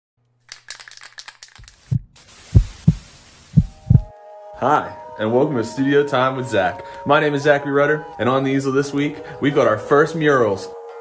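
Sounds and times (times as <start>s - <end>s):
steady hiss: 1.7s - 4.1s
deep heartbeat thumps: 1.9s - 4.1s.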